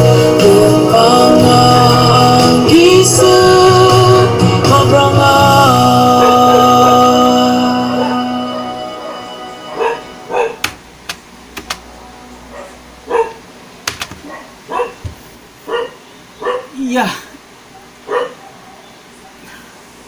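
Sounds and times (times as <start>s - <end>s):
dog barking: 8.0s - 8.3s, 9.1s - 10.7s, 12.5s - 13.4s, 14.2s - 16.8s, 17.7s - 19.5s.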